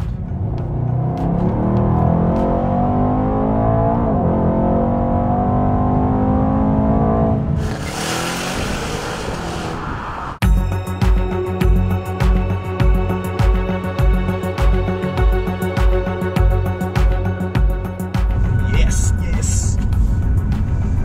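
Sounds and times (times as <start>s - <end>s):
car engine accelerating hard: 0.0s - 10.4s.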